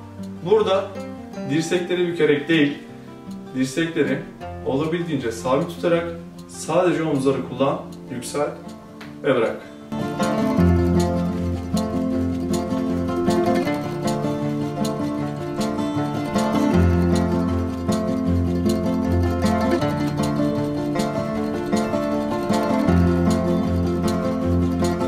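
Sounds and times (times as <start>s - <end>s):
instrumental music with beat: 0.0s - 25.0s.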